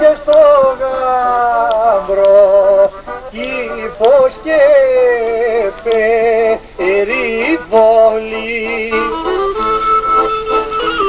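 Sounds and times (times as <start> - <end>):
clarinet playing folk dance tune: 0.0 - 11.0.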